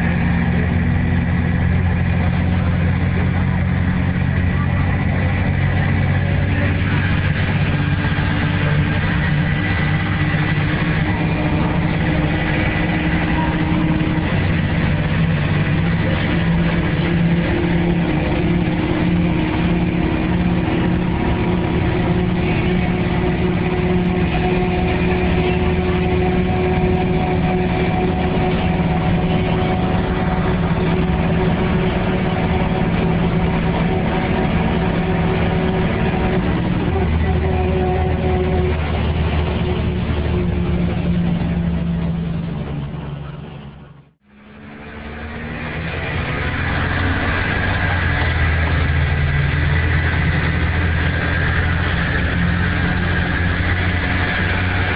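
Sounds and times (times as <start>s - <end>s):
bus diesel engine running: 0.0s - 54.9s.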